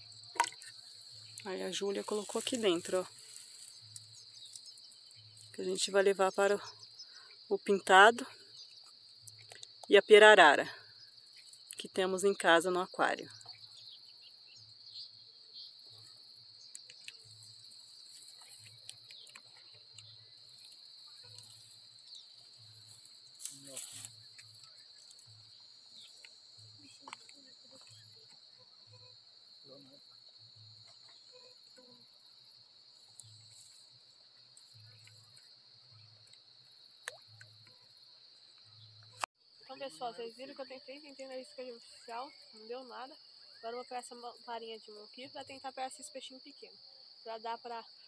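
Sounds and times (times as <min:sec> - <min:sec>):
high-pitched insect chorus: 0:00.0 - 0:48.0.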